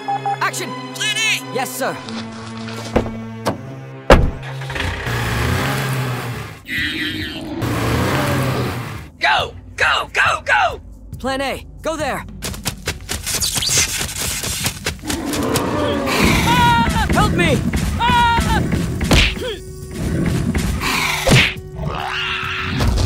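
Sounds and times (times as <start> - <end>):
background music: 0.0 - 23.0
sharp thud: 3.0 - 4.4
high creature calls: 6.7 - 8.9, 15.0 - 17.1, 20.8 - 23.0.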